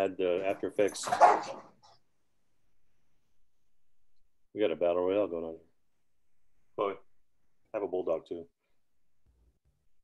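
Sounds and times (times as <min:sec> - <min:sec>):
dog barking: 0:01.0 - 0:01.7.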